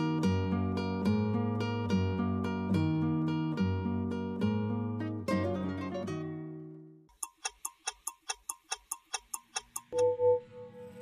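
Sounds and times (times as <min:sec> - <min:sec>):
clock ticking: 0:07.1 - 0:10.2.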